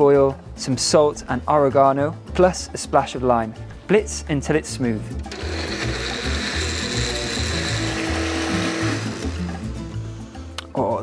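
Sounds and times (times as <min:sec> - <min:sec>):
blender motor whine: 0:05.3 - 0:09.7.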